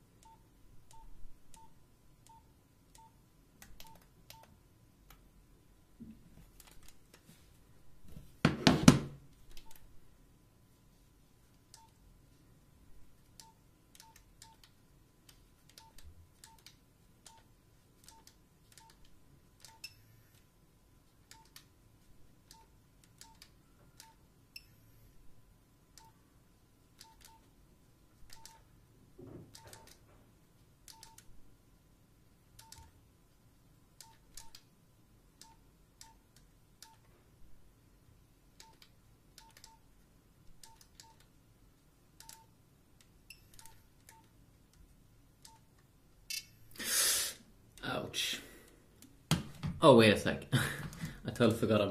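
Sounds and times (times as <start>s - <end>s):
phone keypad beeps: 0.2s - 3.2s, 3.8s - 4.5s, 15.8s - 16.7s, 19.6s - 20.1s, 22.5s - 23.4s, 27.0s - 27.5s, 28.3s - 28.6s, 30.9s - 31.2s, 34.0s - 34.6s, 42.2s - 42.5s.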